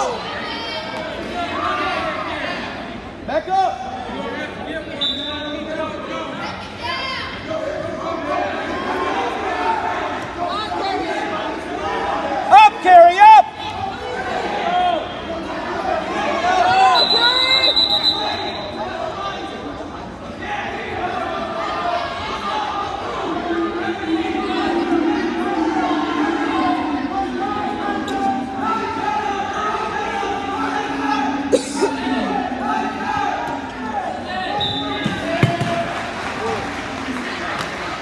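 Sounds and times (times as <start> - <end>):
voices echoing in gym: 0.0 - 38.0
referee's whistle blast: 16.9 - 18.8, 34.5 - 35.3.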